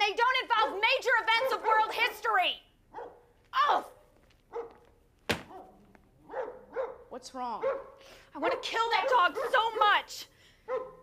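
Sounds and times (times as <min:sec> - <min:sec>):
dog barking: 0:01.4 - 0:02.2, 0:02.9 - 0:03.3, 0:04.5 - 0:10.0, 0:10.7 - 0:11.0
sharp knock: 0:05.3 - 0:05.6.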